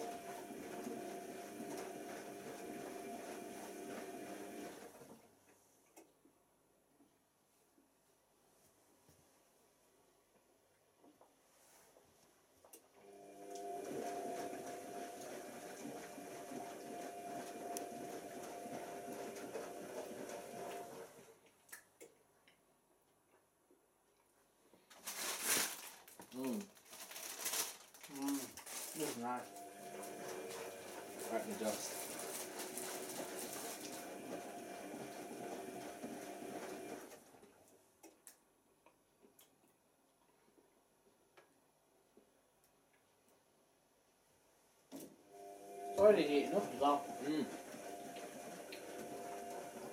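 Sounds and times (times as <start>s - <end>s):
washing machine motor hum: 0.0s - 5.2s, 13.0s - 21.3s, 28.9s - 37.4s, 45.2s - 49.9s.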